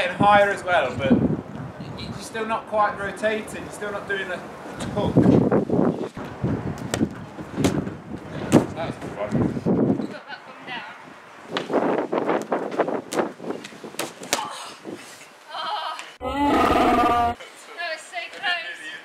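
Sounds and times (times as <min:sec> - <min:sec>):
loud growling roar: 0:16.2 - 0:17.4.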